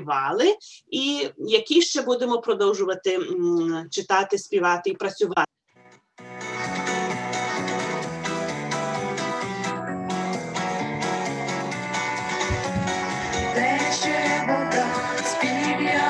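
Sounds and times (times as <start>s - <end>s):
song with sung verse: 12.5s - 16.0s.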